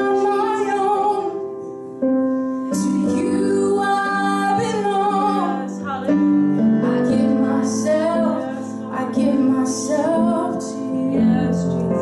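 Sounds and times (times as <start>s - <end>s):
woman singing a worship song: 0.0s - 1.5s, 2.7s - 12.0s
digital piano chords: 0.0s - 12.0s.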